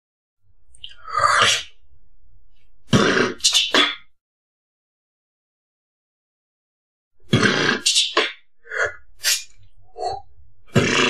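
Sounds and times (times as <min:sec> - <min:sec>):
beatboxing mouth sounds: 0:07.3 - 0:11.0.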